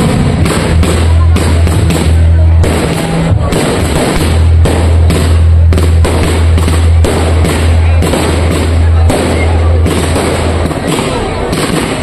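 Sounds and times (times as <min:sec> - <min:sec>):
fireworks bangs and crackles: 0:00.0 - 0:12.0
low rumble: 0:00.0 - 0:12.0.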